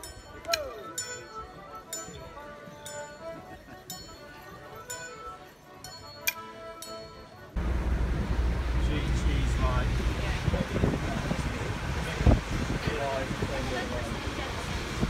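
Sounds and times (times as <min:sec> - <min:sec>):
accordion tune: 0:00.0 - 0:10.0
loud rumbling on microphone: 0:07.6 - 0:15.0.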